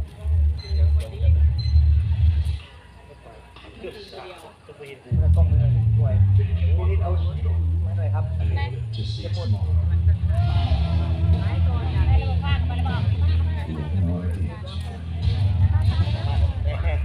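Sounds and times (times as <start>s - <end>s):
people talking: 0.0s - 17.0s
engine humming: 5.1s - 17.0s.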